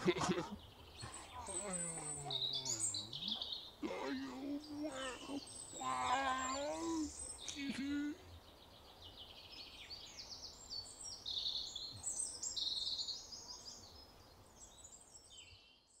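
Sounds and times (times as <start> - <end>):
faint outdoor background noise: 0.0 - 16.0
songbirds chirping and trilling: 0.0 - 16.0.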